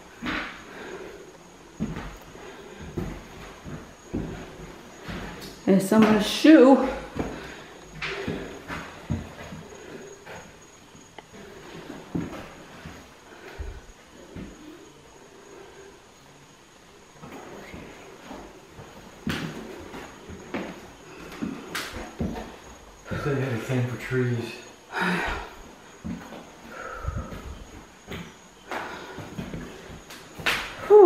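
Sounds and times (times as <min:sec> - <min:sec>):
footsteps on bare floor: 0:00.0 - 0:14.8, 0:17.1 - 0:23.7, 0:25.2 - 0:31.0.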